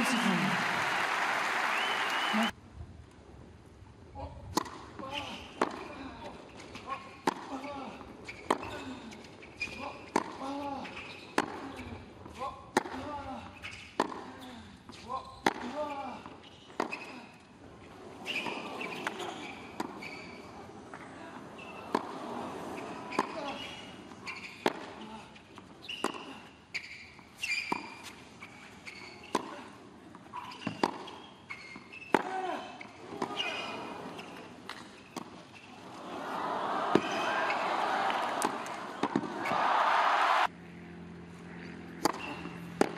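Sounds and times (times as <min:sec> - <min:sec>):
tennis ball hit with rackets: 0:10.1 - 0:10.4, 0:11.4 - 0:11.7, 0:12.7 - 0:13.1, 0:14.0 - 0:14.3, 0:15.4 - 0:15.8, 0:30.6 - 0:31.1, 0:36.9 - 0:39.7, 0:42.0 - 0:42.9
crowd murmur: 0:35.8 - 0:40.5.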